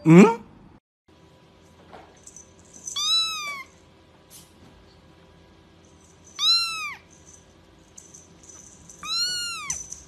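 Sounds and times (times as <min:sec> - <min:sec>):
kitten meowing: 0:03.0 - 0:03.7, 0:06.4 - 0:07.0, 0:09.0 - 0:09.9.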